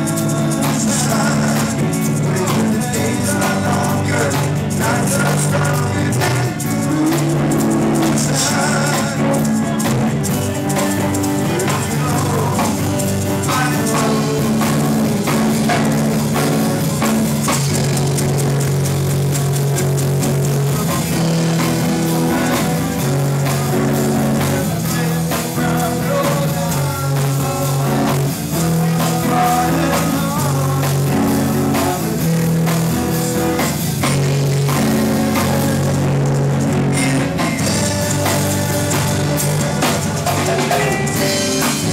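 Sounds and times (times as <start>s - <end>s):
live rock band playing: 0.0s - 41.9s.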